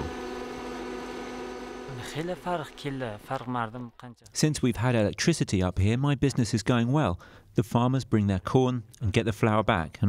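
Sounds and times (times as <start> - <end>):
flour mill motor humming: 0.0 - 3.4.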